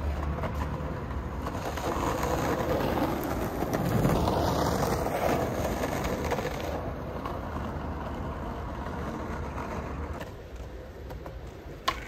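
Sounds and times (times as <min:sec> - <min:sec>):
skateboard wheels rolling: 0:00.0 - 0:12.0.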